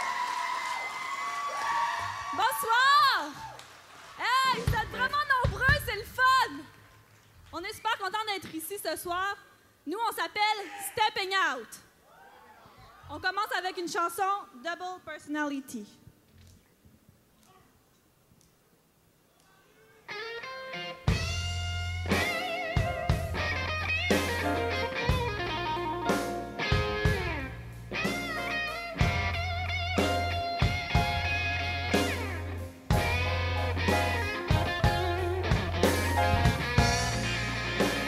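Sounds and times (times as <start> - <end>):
drums: 1.9 - 7.8, 20.9 - 38.0
electric guitar lead lines: 20.0 - 38.0
bass guitar: 20.2 - 38.0.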